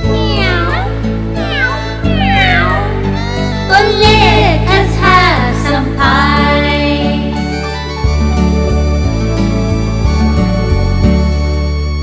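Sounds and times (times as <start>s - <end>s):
cartoon kitten meowing: 0.0s - 3.9s
children's music backing track: 0.0s - 12.0s.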